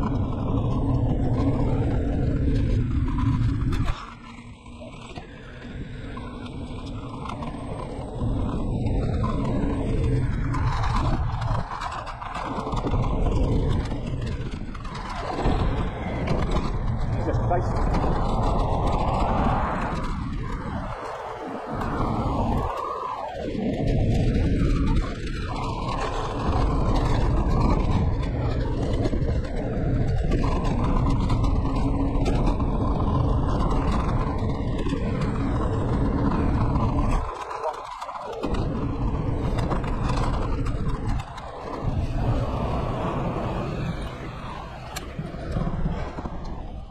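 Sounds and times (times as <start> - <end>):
scooter road rumble: 0.0 - 46.9
wind rushing over microphone: 0.0 - 46.9.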